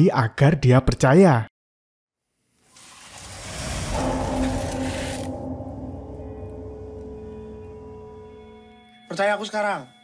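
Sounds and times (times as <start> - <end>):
hiss: 2.6 - 4.0
low rumble: 3.4 - 8.7
steady droning tone: 3.9 - 9.0.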